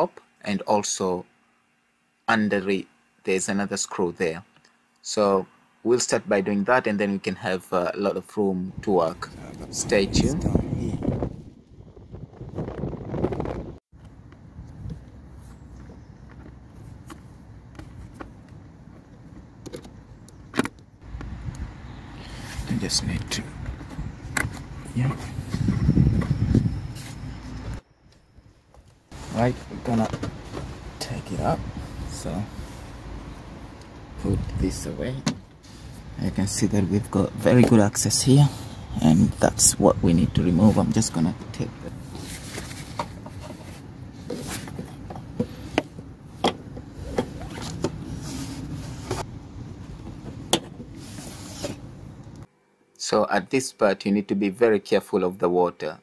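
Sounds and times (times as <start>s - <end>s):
rubber hose handling noise: 42.1s - 49.2s.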